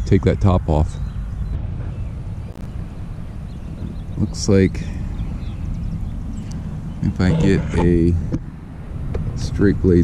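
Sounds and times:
wind rumbling on microphone: 0:01.0 - 0:10.0.

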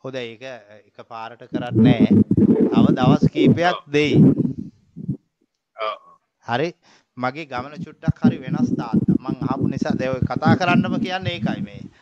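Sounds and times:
man speaking: 0:00.0 - 0:04.4, 0:05.8 - 0:12.0.

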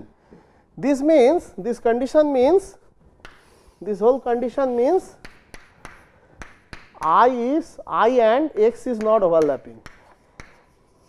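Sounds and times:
chalk tapping on a blackboard: 0:03.2 - 0:03.8, 0:04.5 - 0:07.4, 0:08.2 - 0:11.0.

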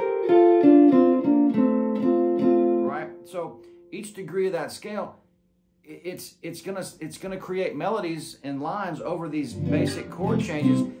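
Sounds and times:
clean electric guitar melody: 0:00.0 - 0:03.8, 0:09.5 - 0:11.0
man's voice: 0:05.9 - 0:11.0.

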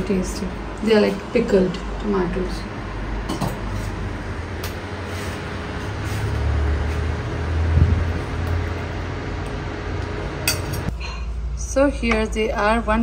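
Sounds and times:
low mechanical hum and rumble: 0:00.0 - 0:13.0.

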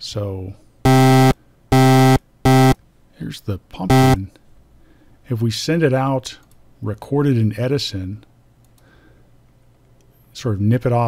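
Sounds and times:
buzzy synthesized tone: 0:00.9 - 0:02.8, 0:03.9 - 0:04.2.

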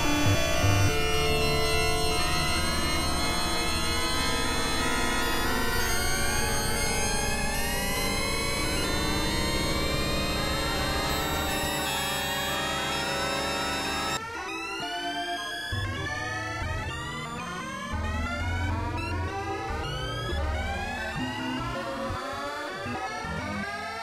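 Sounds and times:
experimental synthesizer music: 0:00.0 - 0:24.0.

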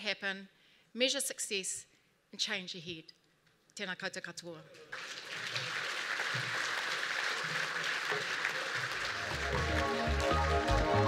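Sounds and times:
audience applause: 0:04.9 - 0:11.0.

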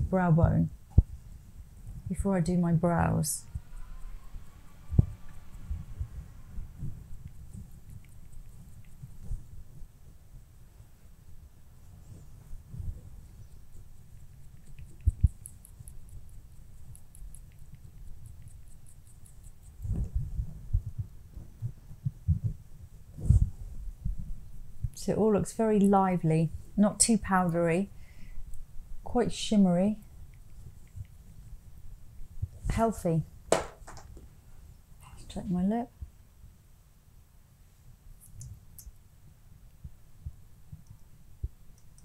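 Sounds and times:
makeup brush rubbing on face: 0:06.5 - 0:09.7, 0:11.8 - 0:24.6.

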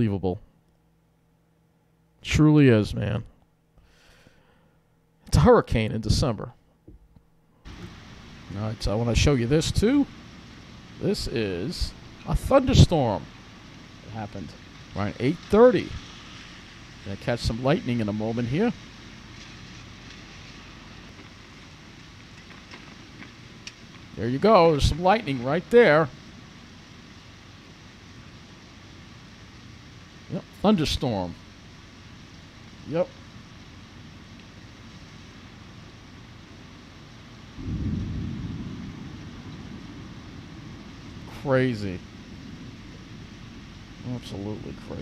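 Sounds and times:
faint low hum: 0:00.0 - 0:45.0
rain hiss: 0:03.8 - 0:06.6, 0:07.6 - 0:45.0
thunder rumble: 0:07.7 - 0:34.2, 0:35.2 - 0:45.0
faint ticks: 0:19.3 - 0:24.1.

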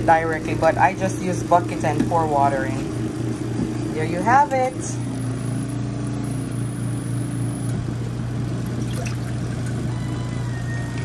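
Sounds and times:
washing machine motor hum: 0:00.0 - 0:11.0
water sloshing: 0:08.6 - 0:09.9.

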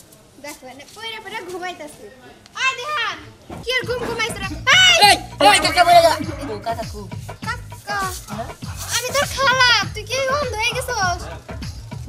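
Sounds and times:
background music: 0:03.5 - 0:12.0.

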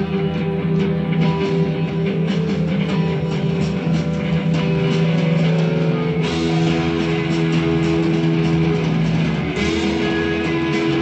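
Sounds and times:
drum kit: 0:00.0 - 0:11.0
sustained electric guitar notes: 0:00.0 - 0:11.0.

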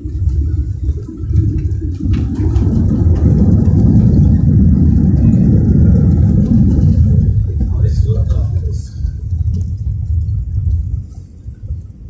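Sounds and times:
airliner cabin rumble: 0:00.0 - 0:12.0.

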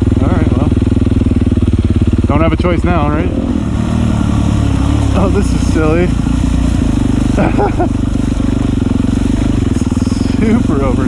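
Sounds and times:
dirt bike engine running: 0:00.0 - 0:11.0.

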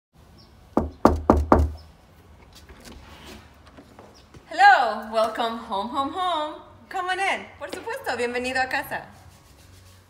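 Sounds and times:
knocks on a wooden door: 0:00.8 - 0:01.8.

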